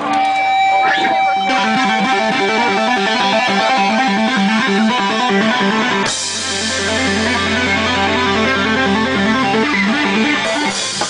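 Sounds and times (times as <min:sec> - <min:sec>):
electric guitar riff: 0:00.0 - 0:11.0.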